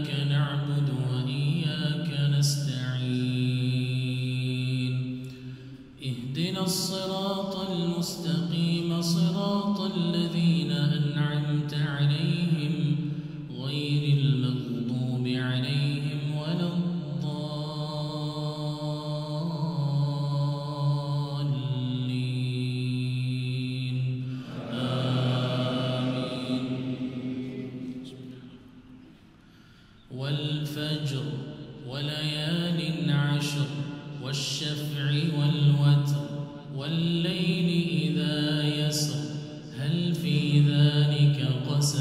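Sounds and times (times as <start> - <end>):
man chanting into a microphone: 0.0 - 28.6, 30.0 - 42.0.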